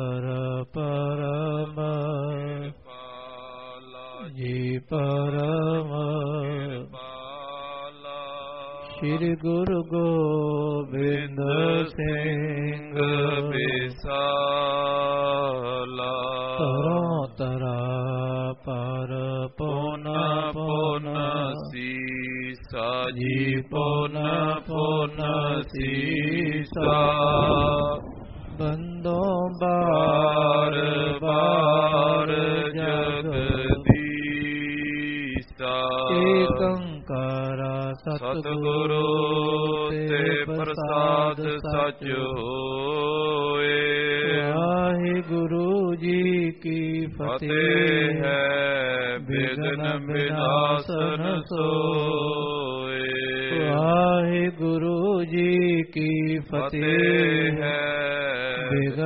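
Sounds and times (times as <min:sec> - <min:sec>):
devotional chanting voice: 0:00.0 - 0:59.0.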